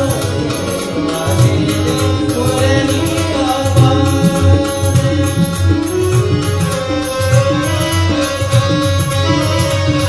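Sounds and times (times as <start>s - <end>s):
harmonium melody: 0.0s - 10.0s
tabla strokes: 0.0s - 10.0s.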